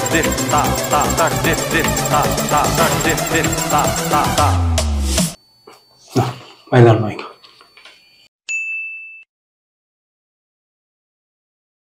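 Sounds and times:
high-pitched ding: 8.1s - 9.3s.

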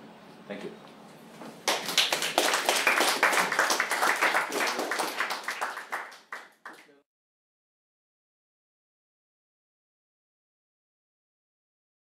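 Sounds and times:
audience applauding: 1.6s - 7.0s.

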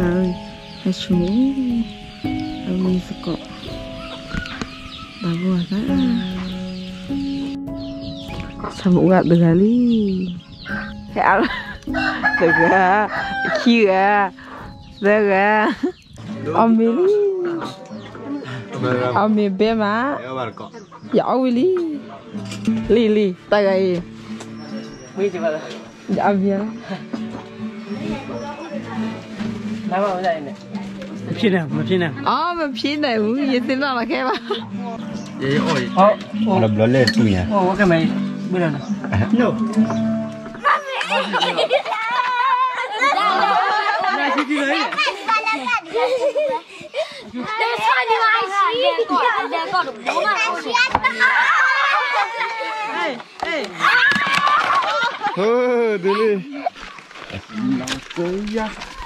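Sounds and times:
people talking: 0.0s - 1.9s, 2.7s - 3.4s, 5.2s - 6.2s, 8.8s - 10.4s
young children talking: 17.0s - 18.4s, 27.8s - 29.5s, 40.5s - 56.8s.

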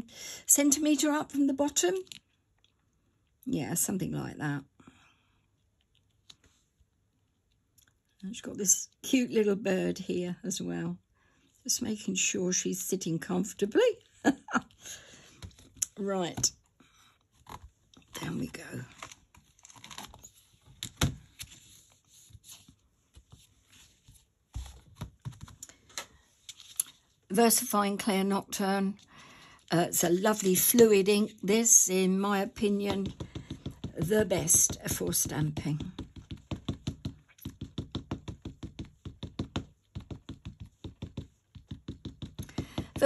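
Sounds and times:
ink pad tapping rubber stamp: 32.6s - 43.0s
plastic lid knocking: 32.9s - 43.0s.

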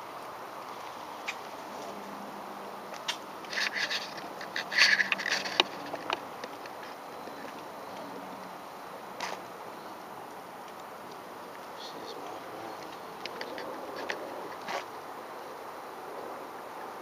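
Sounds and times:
steady outdoor hiss: 0.0s - 17.0s
camera handling clicks and rattles: 3.0s - 6.9s.

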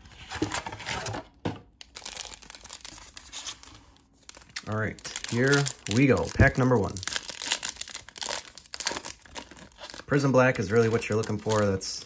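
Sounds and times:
foil wrapper crinkling and tearing: 1.8s - 12.0s.

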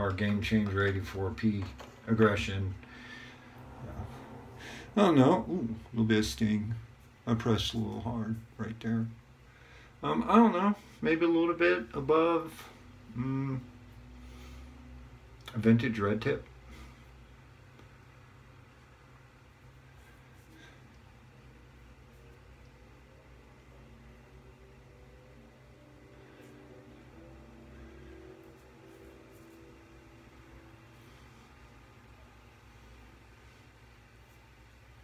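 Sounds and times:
steady low hum: 0.0s - 35.0s
soft rubbing on skin: 28.1s - 32.0s, 32.6s - 35.0s.

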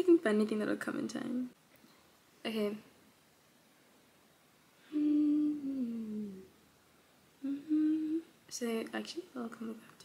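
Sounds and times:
woman humming: 4.8s - 6.5s, 7.4s - 8.4s.

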